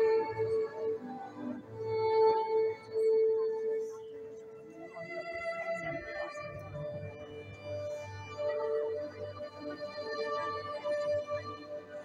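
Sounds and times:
solo violin long notes: 0.0s - 12.0s.

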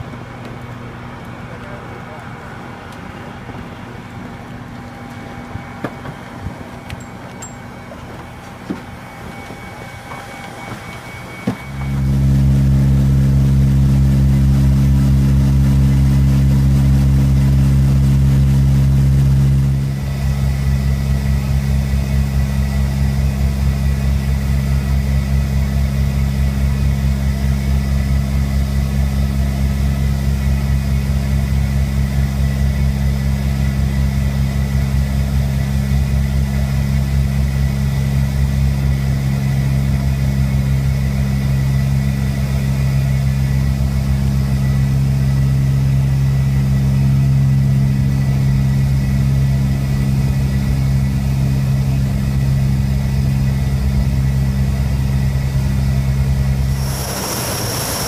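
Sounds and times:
airplane cabin engine drone: 0.0s - 58.0s.

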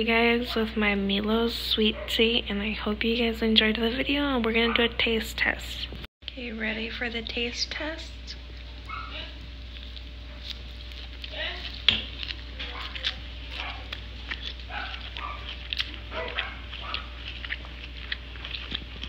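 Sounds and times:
person chewing salad: 8.4s - 19.0s.

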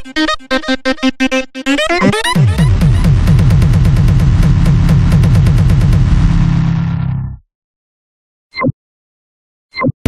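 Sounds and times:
electronic drum roll: 2.4s - 7.4s.

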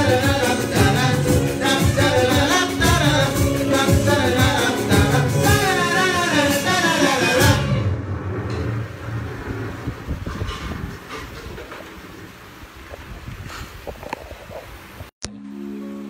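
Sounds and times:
band with bass and drums: 0.0s - 7.9s
person singing: 0.0s - 7.9s.

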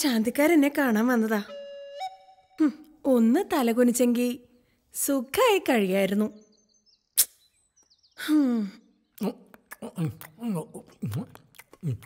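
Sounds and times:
woman speaking: 0.0s - 1.5s, 2.6s - 6.4s
faint high chirps: 6.2s - 10.1s.

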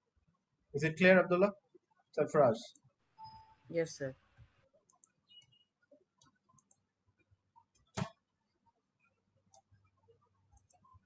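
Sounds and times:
faint small ticks: 4.3s - 5.6s, 6.2s - 7.9s, 9.0s - 11.0s.

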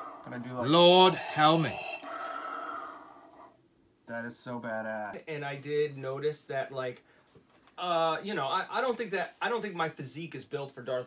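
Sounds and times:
breathy hissing exhale: 0.0s - 3.5s.

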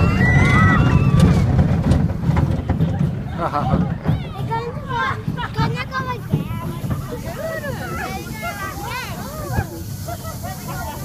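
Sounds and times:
wind buffeting microphone: 0.0s - 10.1s
roller coaster rumbling and rattling: 0.0s - 11.0s.

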